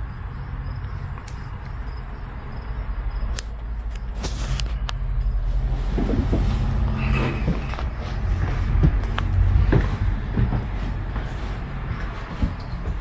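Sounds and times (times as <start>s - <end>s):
low rumble: 5.4s - 10.8s
footsteps on metal floor: 5.9s - 13.0s.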